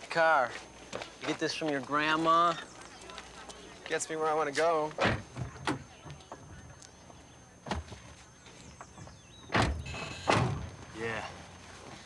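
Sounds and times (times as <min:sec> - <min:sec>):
car doors shutting: 0:08.8 - 0:10.8.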